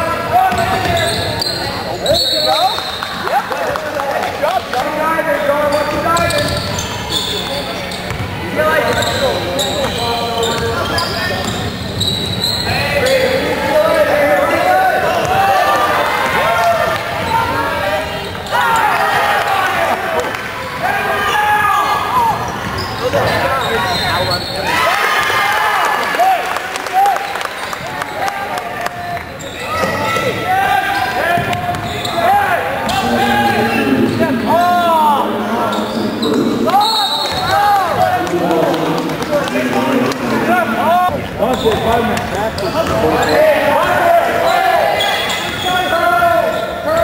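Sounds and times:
spectators shouting and chatting: 0:00.0 - 0:47.0
sneakers squeaking: 0:00.4 - 0:03.2, 0:05.4 - 0:13.5, 0:21.4 - 0:25.3, 0:29.3 - 0:34.9, 0:35.5 - 0:38.2, 0:41.1 - 0:47.0.

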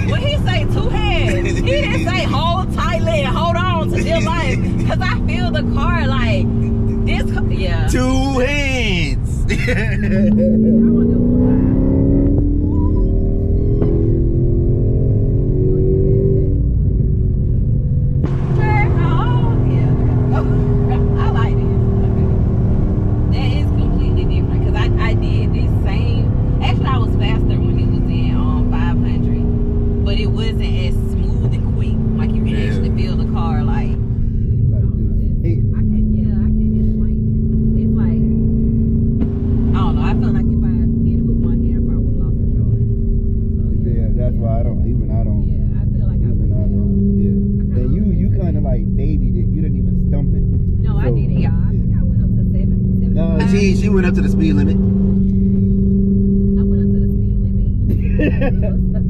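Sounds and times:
car engine drone in cabin: 0:00.0 - 0:59.0
road noise: 0:00.0 - 0:59.0.

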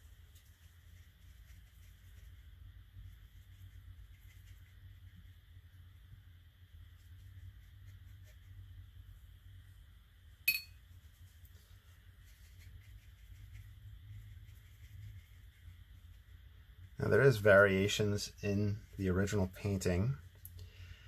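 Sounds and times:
brush dabbing on paper: 0:00.0 - 0:20.5
low room hum: 0:00.0 - 0:21.0
sharp ringing clink: 0:10.5 - 0:10.8.

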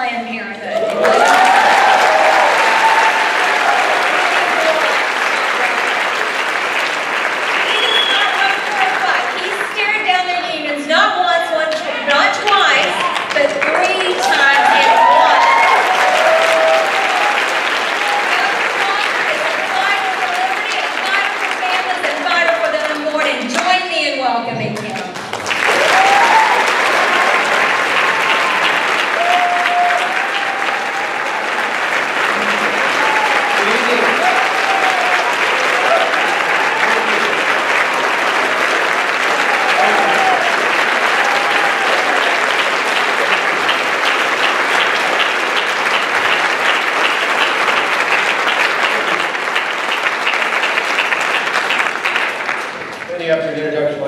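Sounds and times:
audience applauding: 0:00.0 - 0:24.0, 0:24.7 - 0:54.0.

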